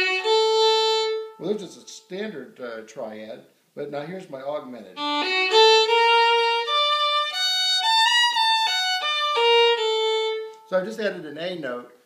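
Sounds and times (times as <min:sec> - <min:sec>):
solo fiddle playing swing lick: 0:00.0 - 0:02.1, 0:04.8 - 0:10.9.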